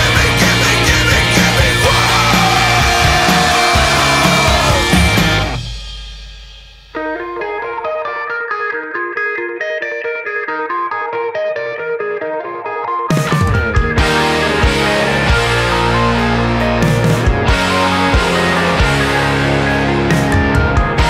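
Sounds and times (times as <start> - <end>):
distorted punk rock music: 0.0 - 21.0
clean guitar picking single notes: 7.0 - 21.0.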